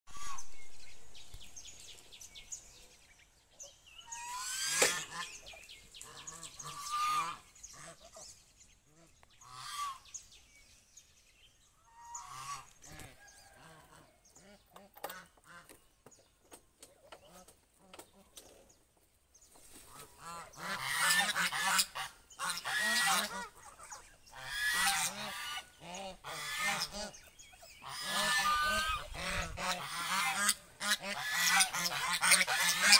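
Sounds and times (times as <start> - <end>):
geese honking: 0.1 - 0.5, 4.0 - 8.2, 9.0 - 10.1, 20.2 - 32.9.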